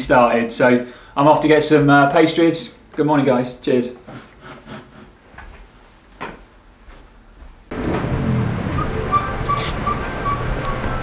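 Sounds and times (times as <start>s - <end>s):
busy street din: 7.7s - 11.0s.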